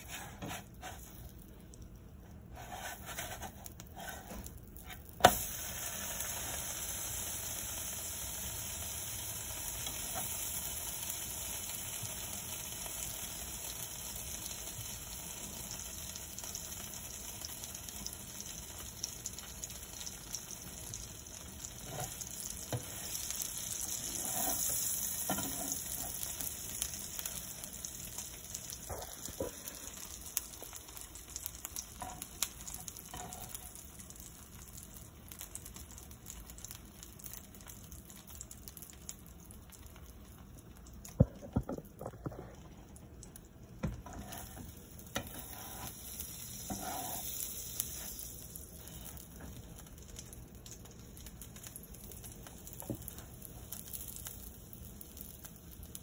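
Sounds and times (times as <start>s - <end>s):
sandwich sizzling in pan: 0.0s - 56.0s.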